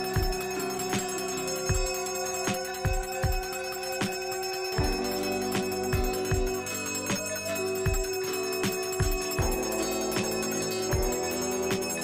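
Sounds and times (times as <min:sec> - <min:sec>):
brass hand bell ringing: 0:00.0 - 0:12.0.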